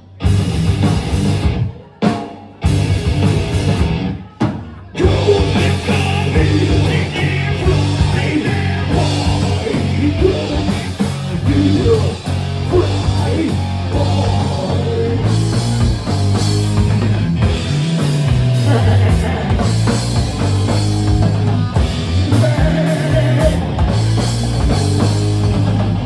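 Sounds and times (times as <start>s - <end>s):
electric guitar: 0.0s - 4.2s, 5.0s - 26.0s
drum kit: 0.0s - 26.0s
person singing: 4.7s - 15.8s, 18.6s - 19.8s, 21.2s - 23.9s.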